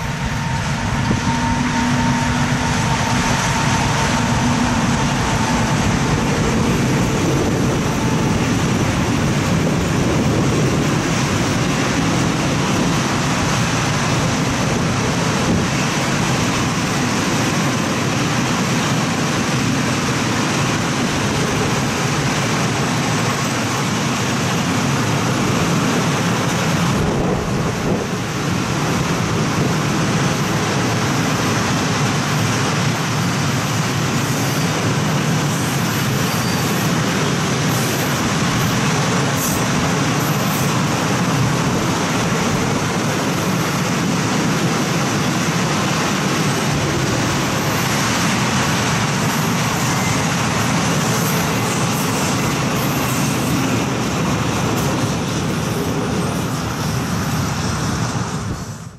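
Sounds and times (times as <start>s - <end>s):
train wheels on track: 0.0s - 58.9s.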